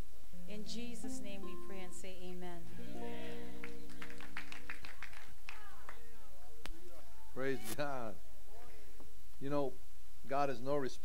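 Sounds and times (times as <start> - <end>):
worship band holding a chord: 0.4 - 4.5.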